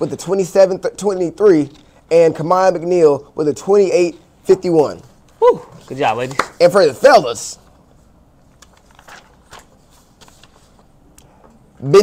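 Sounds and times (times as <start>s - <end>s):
paper rustling: 8.4s - 11.0s.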